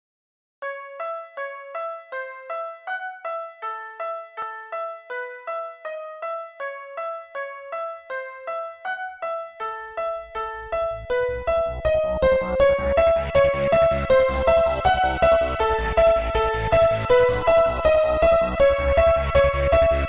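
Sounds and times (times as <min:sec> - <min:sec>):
low bass: 0:10.6 - 0:20.0.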